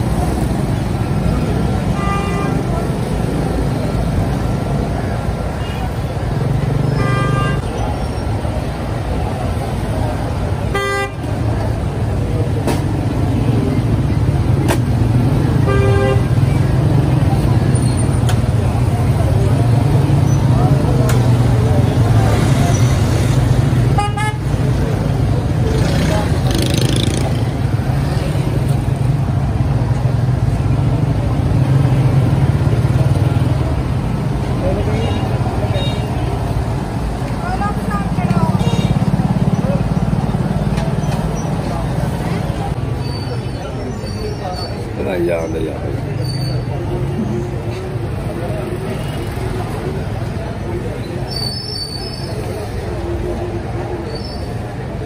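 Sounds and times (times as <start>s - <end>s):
passing vehicles rumble: 0.0s - 55.0s
vehicle horn beeps: 7.0s - 7.7s.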